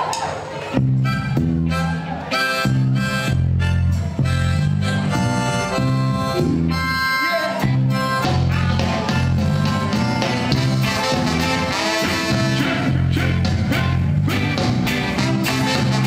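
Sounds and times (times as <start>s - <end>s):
ska band playing: 0.4s - 16.0s.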